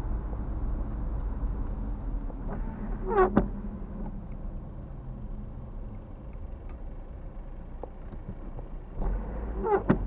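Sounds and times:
car engine rumble: 0.0 - 10.0
tyres on wet road: 0.0 - 10.0.

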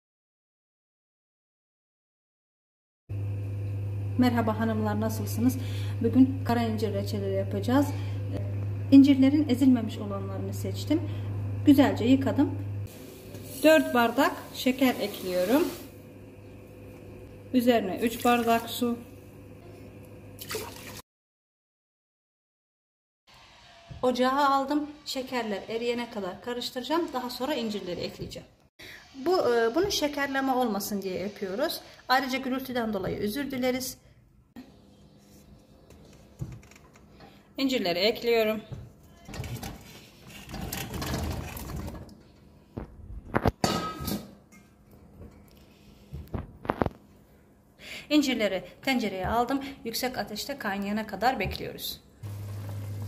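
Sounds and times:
water pouring into a pot: 20.4 - 21.0
water splash: 20.4 - 21.0.

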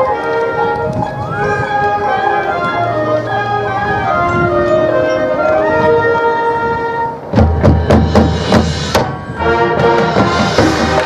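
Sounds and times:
marching band playing: 0.0 - 11.0
accented percussion hits: 7.2 - 11.0.

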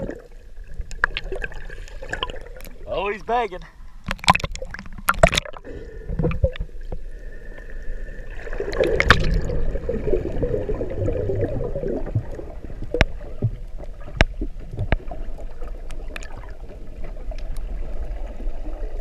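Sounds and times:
gurgling water wash: 0.0 - 19.0
underwater rumble of moving water: 0.0 - 19.0.

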